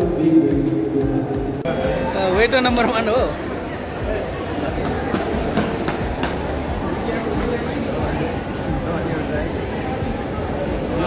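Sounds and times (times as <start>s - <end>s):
food court din: 0.0s - 11.0s.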